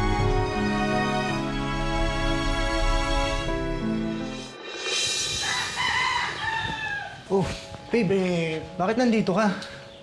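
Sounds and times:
soft background music: 0.0 - 10.0
rooster crowing: 5.2 - 7.3.

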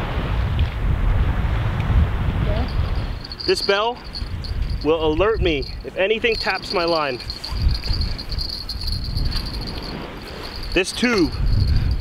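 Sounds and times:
small bell tinkling: 2.5 - 12.0.

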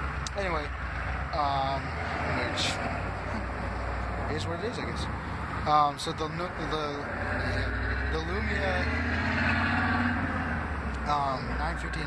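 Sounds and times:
road traffic noise: 0.0 - 12.0
vehicle passing close by: 6.4 - 12.0.

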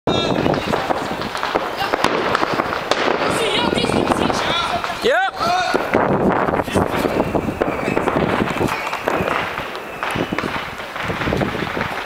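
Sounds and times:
fireworks crackling and popping: 0.1 - 12.0
people's voices: 0.1 - 12.0.

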